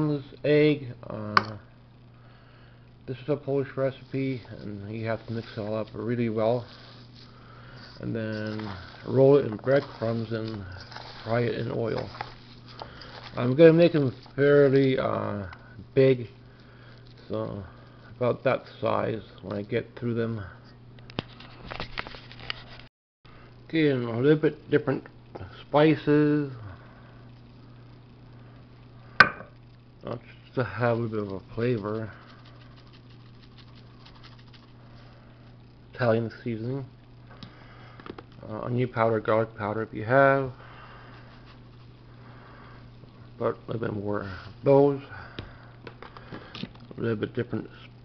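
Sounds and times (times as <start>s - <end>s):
low steady hum: 0.0s - 48.0s
seasoning patter from spice shaker: 30.7s - 35.1s.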